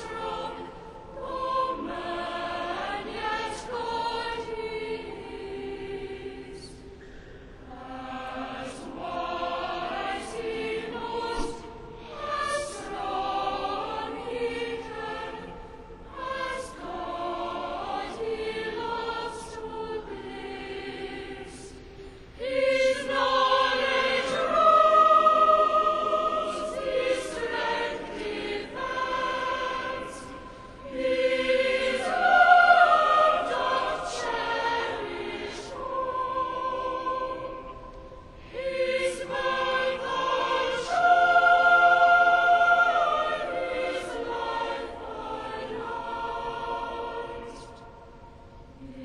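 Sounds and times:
choir singing: 0.0 - 49.0.

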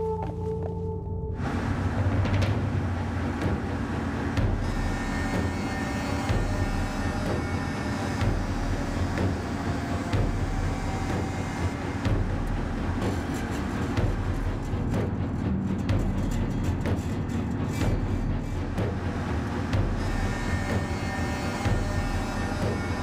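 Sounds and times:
car engine and road noise: 0.0 - 5.5.

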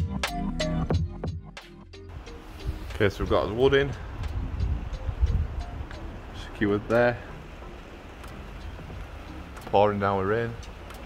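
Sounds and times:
soft background music: 0.0 - 11.0
wind rumble: 2.1 - 11.0
faint ticks: 7.7 - 9.8, 10.6 - 11.0.

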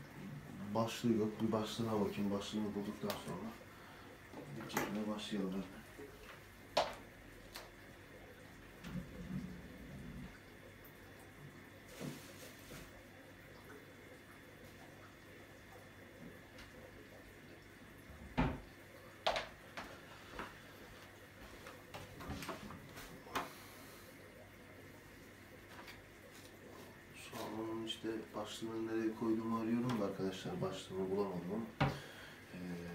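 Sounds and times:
aquarium filter hum: 0.0 - 32.9
objects knocking and clattering: 19.2 - 19.6.

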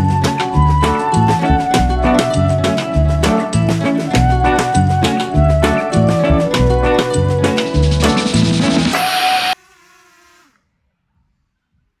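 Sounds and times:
drone propellers humming: 6.2 - 9.6.

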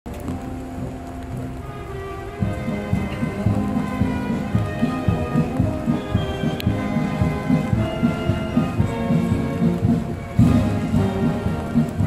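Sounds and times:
faint military band music: 0.1 - 12.0.

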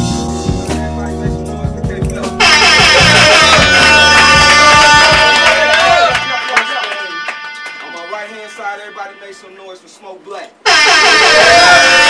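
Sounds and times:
music: 0.0 - 9.5
loud air horn blast: 2.4 - 9.6, 10.6 - 12.0.

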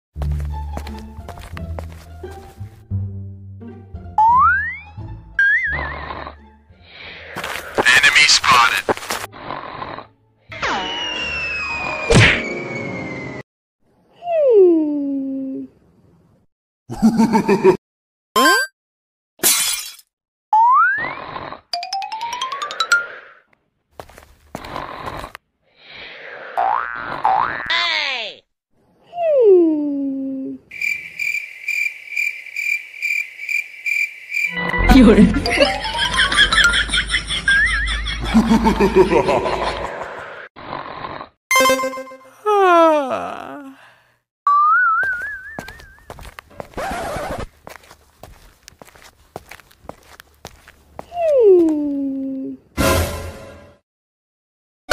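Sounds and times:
upward gliding cartoon tone: 21.8 - 23.3, 44.5 - 46.0.

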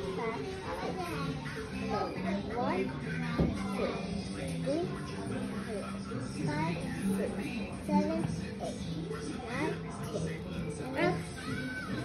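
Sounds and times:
children chattering and babbling: 0.0 - 12.0
faint background music: 0.0 - 12.0.

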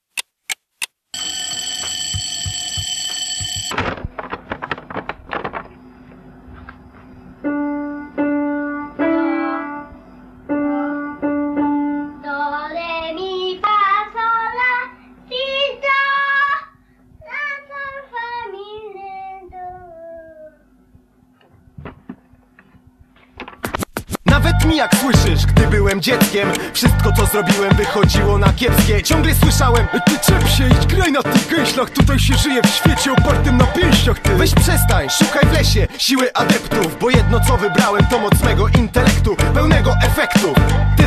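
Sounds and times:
alarm clock bell ringing: 1.2 - 3.8
record scratches: 23.2 - 25.2
hip hop track: 24.2 - 41.0
high singing voice: 24.3 - 41.0.

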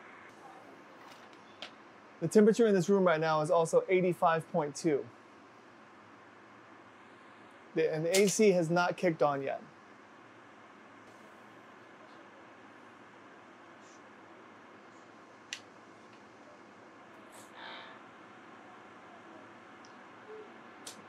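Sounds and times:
air conditioner fan hiss: 0.0 - 21.0
sharp click: 8.1 - 8.5.

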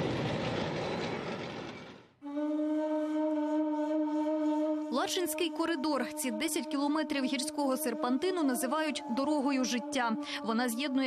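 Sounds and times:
military vehicles rumbling: 0.0 - 2.1.

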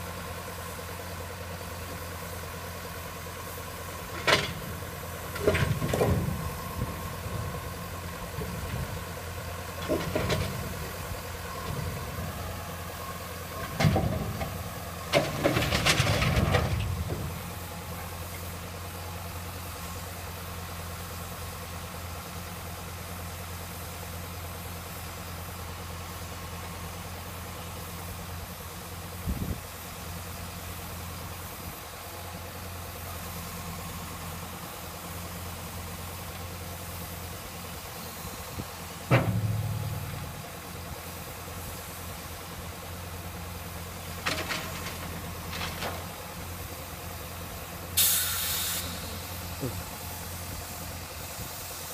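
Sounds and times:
diesel engine running: 0.0 - 51.9
crane grapple clanking: 0.1 - 22.3, 30.2 - 51.7
short knock: 39.1 - 40.7
sharp bang: 39.1 - 40.8.

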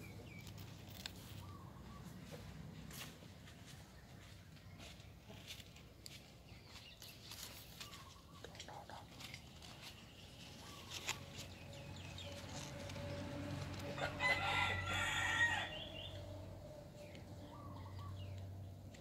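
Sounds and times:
rooster crowing: 13.8 - 16.2.

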